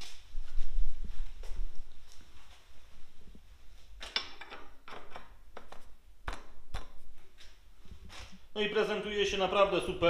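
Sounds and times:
metal clinks and knocks: 4.0s - 5.4s.

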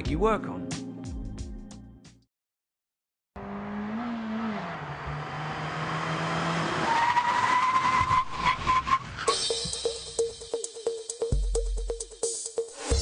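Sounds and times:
car engine driving: 3.4s - 9.3s.

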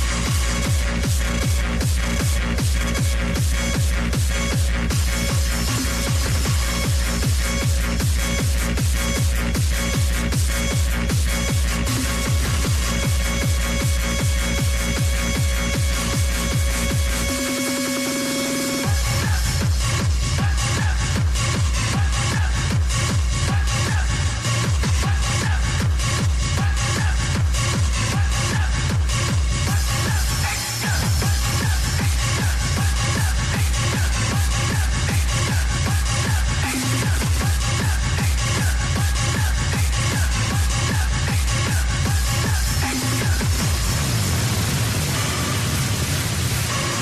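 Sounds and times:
hardstyle dance music: 0.0s - 47.0s.

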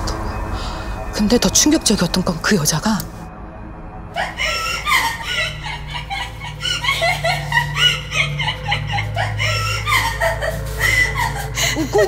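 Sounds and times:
low droning horror music: 0.0s - 12.0s
high-pitched laughter: 4.2s - 12.0s.

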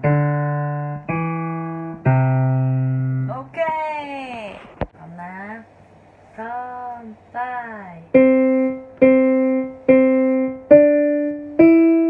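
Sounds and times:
piano notes: 0.0s - 3.3s, 8.1s - 12.0s.

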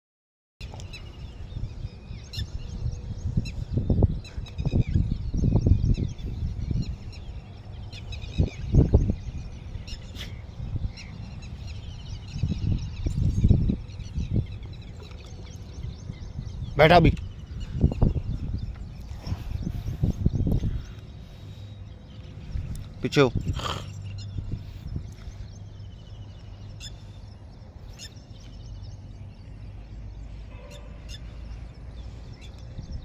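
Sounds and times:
birds chirping and calling: 0.6s - 33.0s.

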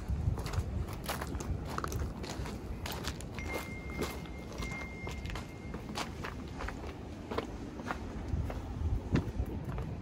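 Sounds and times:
footsteps on gritty stone floor: 0.0s - 10.0s.

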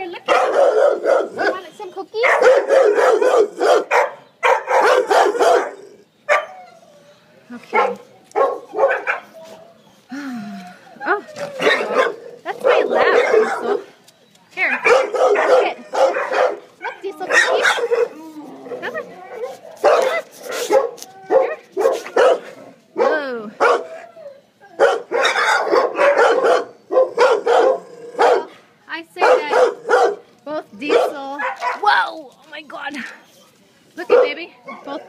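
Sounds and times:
dogs barking: 0.2s - 6.8s, 7.7s - 9.8s, 11.5s - 14.0s, 14.6s - 24.1s, 24.7s - 28.6s, 29.2s - 30.2s, 30.8s - 32.0s, 34.0s - 35.0s.

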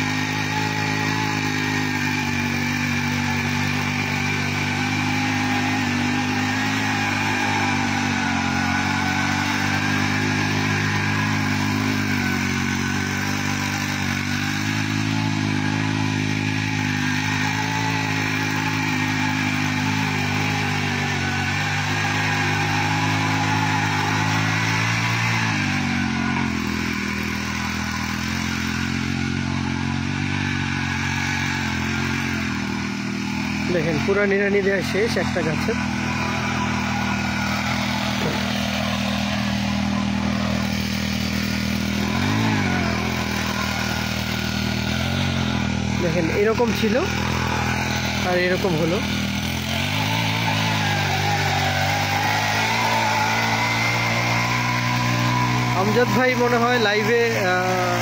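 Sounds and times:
tiller engine running: 0.0s - 58.0s.

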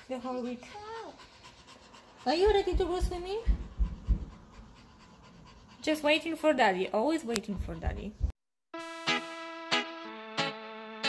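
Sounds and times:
woman's voice: 0.0s - 0.8s, 2.2s - 3.7s, 5.8s - 8.3s
low thumps: 2.4s - 4.6s.

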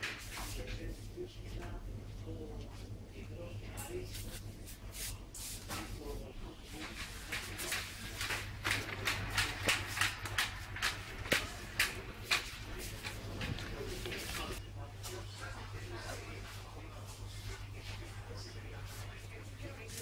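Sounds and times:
steady low hum: 0.0s - 20.0s
indistinct background voices: 0.4s - 20.0s.

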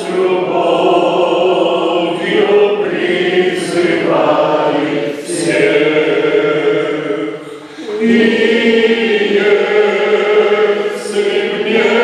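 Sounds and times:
men singing a hymn: 0.0s - 12.0s.

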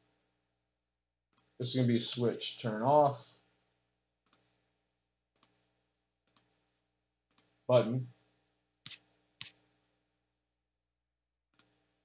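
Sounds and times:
computer mouse clicks: 1.3s - 1.6s, 4.2s - 4.5s, 5.3s - 5.6s, 6.2s - 6.6s, 7.3s - 7.6s, 8.9s - 9.7s, 11.5s - 11.8s.

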